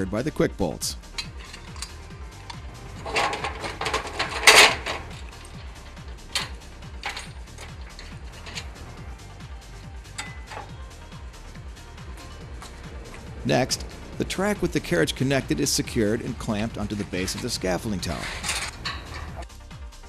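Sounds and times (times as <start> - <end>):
background music: 0.0 - 20.0
metal clicks: 1.0 - 9.1, 10.1 - 10.9, 17.0 - 19.5
metal clanks and rattles: 1.0 - 19.5.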